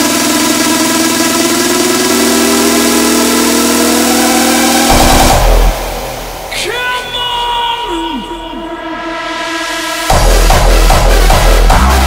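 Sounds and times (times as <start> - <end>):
distorted synth tone rising: 0.0 - 6.5
heavy bass hit: 4.9 - 6.6, 8.8 - 12.0.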